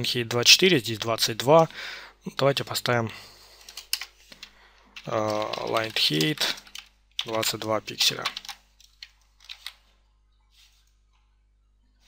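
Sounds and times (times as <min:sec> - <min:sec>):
computer keyboard keystrokes: 0:03.6 - 0:09.8.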